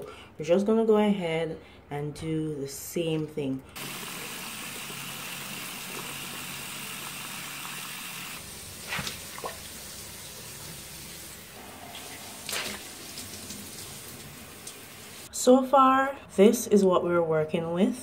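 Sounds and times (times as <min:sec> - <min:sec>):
faucet running onto a rag: 0:03.8 - 0:15.3.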